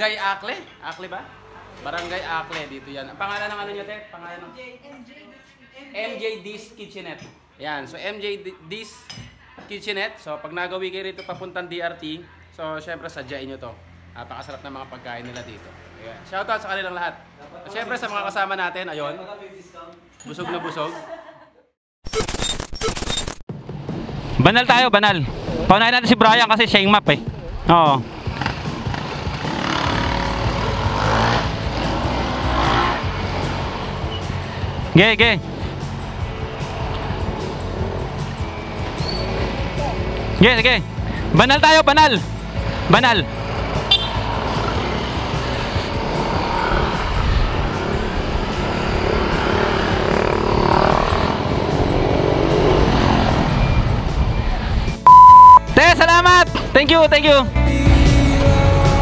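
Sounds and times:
motorcycle engine revving: 0:27.2 - 0:41.4, 0:42.2 - 0:54.4
loud steady beep: 0:43.9 - 0:44.2, 0:55.0 - 0:55.7.

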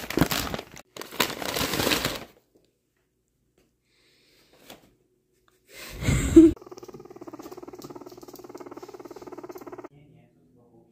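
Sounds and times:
guinea pig purring: 0:06.4 - 0:10.0.

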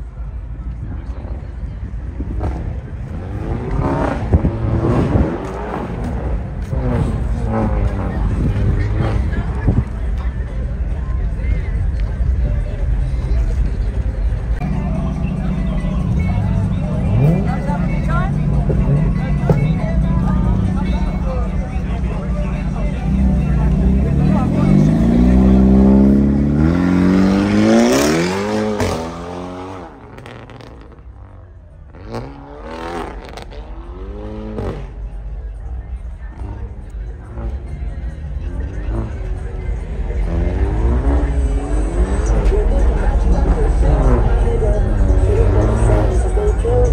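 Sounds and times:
voices: 0:00.0 - 0:46.9
car engine revving: 0:02.2 - 0:10.2, 0:14.3 - 0:46.9.

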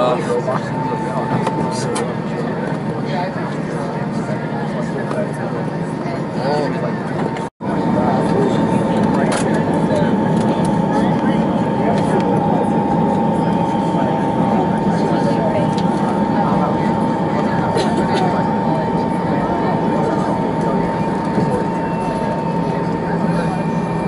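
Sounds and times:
jet engines running at low power: 0:00.0 - 0:24.0
murmur of passengers' voices: 0:00.0 - 0:24.0
steady thin whine: 0:07.0 - 0:24.0.

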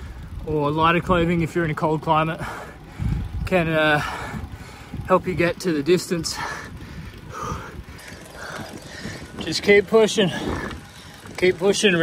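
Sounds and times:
cyclist breathing hard: 0:00.0 - 0:00.4, 0:02.3 - 0:05.1, 0:06.2 - 0:11.4
tyres on road: 0:00.0 - 0:12.0
wind rumble: 0:00.0 - 0:12.0.

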